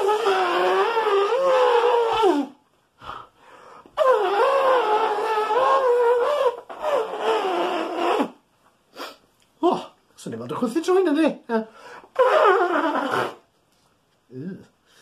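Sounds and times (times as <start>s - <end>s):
man imitating elephant trumpet: 0.0s - 2.6s, 4.0s - 8.4s, 12.1s - 13.5s.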